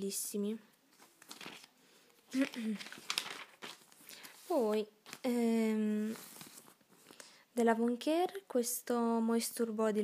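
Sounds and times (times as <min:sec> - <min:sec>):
pages rustling and crinkling: 0:00.9 - 0:05.4, 0:06.0 - 0:07.2.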